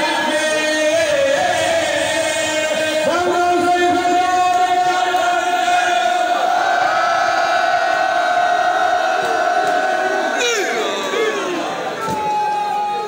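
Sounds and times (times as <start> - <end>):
man chanting over loudspeakers: 0.0 - 6.4.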